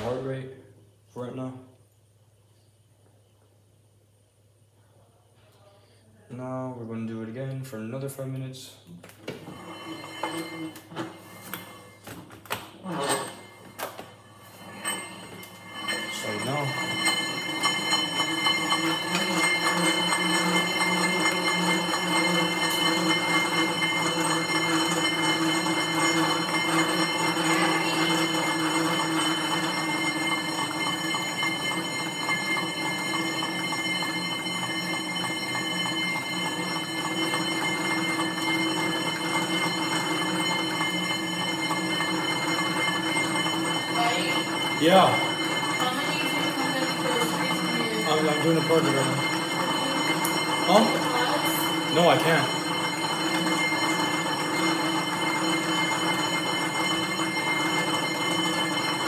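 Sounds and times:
exercise bike flywheel whirring: 0:08.9 - 0:59.0.

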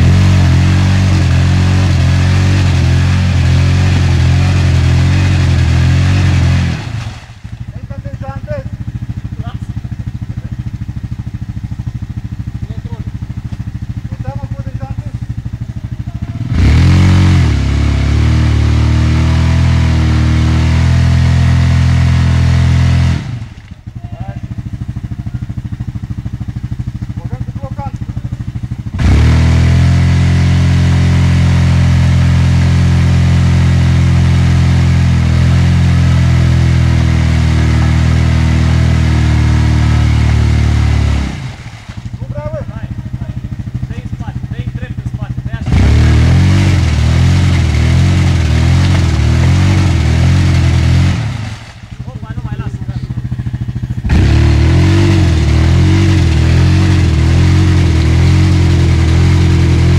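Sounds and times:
quad bike engine revving: 0:00.0 - 0:59.9
wheels churning mud: 0:45.6 - 0:53.0, 0:54.0 - 0:59.9.

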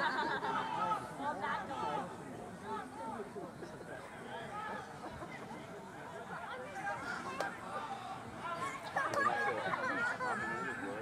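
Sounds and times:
voices calling out and talking: 0:00.0 - 0:11.0.

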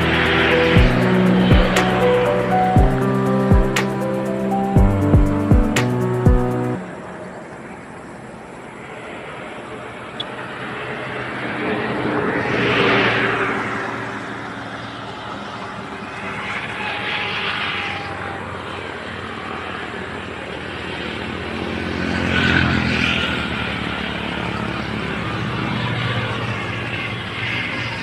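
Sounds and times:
vehicle engine hum: 0:00.0 - 0:28.0.

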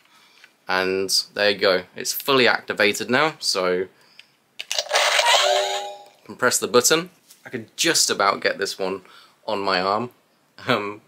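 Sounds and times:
toy electronic noise burst: 0:04.8 - 0:06.1
held electronic tone: 0:04.9 - 0:06.2.

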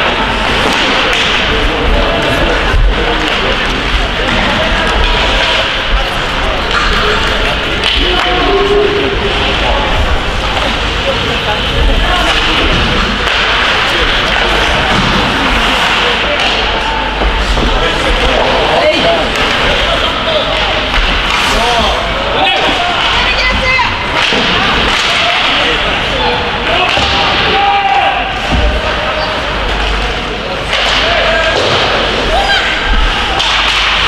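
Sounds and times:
steady rink din: 0:00.0 - 0:34.0
hockey sticks and puck knocking: 0:00.4 - 0:01.6, 0:22.6 - 0:25.7, 0:32.9 - 0:34.0
indistinct shouting voices: 0:13.8 - 0:29.6
people shouting: 0:21.6 - 0:29.2, 0:31.0 - 0:34.0.

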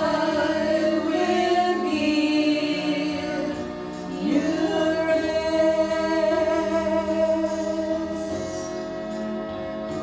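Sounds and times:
women singing in harmony: 0:00.0 - 0:08.9.

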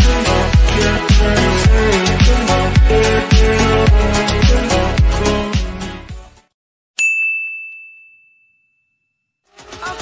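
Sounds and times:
bright bell ding: 0:07.0 - 0:09.4.

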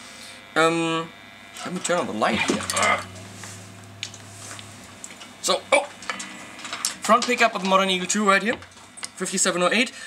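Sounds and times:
guitar amplifier hum: 0:00.0 - 0:10.0.

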